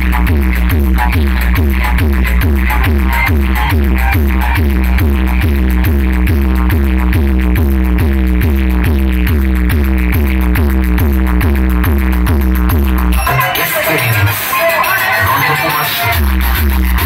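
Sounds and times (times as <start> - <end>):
loud electronic dance music: 0.0 - 17.0.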